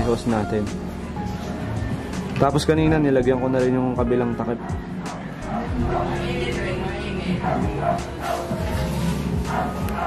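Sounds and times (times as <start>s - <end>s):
background music: 0.0s - 10.0s
dog barking: 4.6s - 6.2s, 7.3s - 10.0s.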